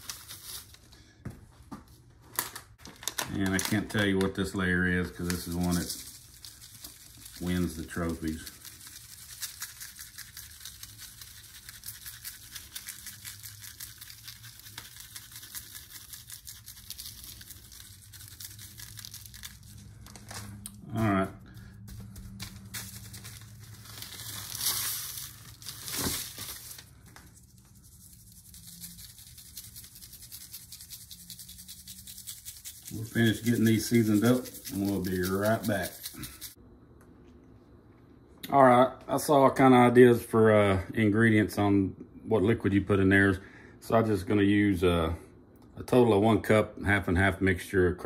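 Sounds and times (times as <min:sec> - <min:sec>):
plastic packet crinkling: 0:02.6 - 0:20.8, 0:21.5 - 0:36.6
granules pattering on paper: 0:02.8 - 0:20.4, 0:21.0 - 0:36.6
hand rubbing over paper: 0:27.4 - 0:36.6.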